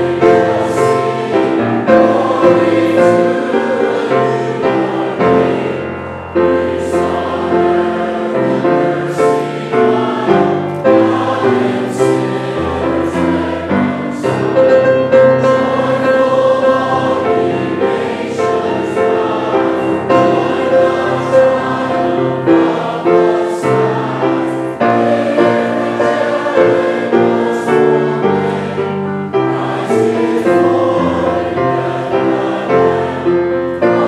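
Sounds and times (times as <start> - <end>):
congregation singing a hymn: 0.0 - 34.0.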